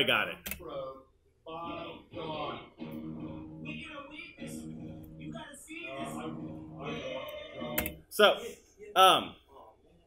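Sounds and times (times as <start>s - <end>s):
song with steady beat over speakers: 1.5s - 8.7s.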